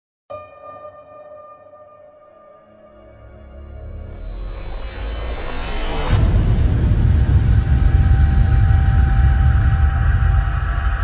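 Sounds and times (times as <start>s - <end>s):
rising swell: 3.6s - 11.0s
deep low rumble: 4.2s - 11.0s.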